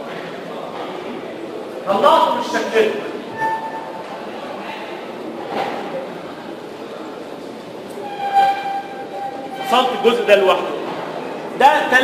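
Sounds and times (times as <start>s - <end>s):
marker squeaking on whiteboard: 3.3s - 4.0s, 8.0s - 10.4s.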